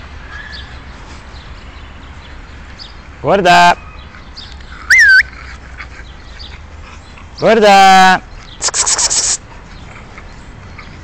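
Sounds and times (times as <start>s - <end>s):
small dog yelping: 4.8s - 5.4s.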